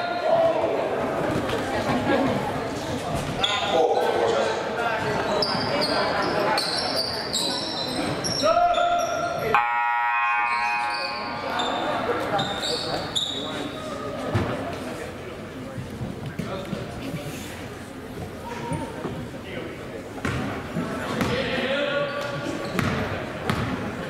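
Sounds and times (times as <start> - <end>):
voices echoing in gym: 0.0 - 24.0
sneakers squeaking on hardwood: 5.0 - 9.3, 11.4 - 14.6, 22.1 - 23.8
buzzer: 9.6 - 11.4.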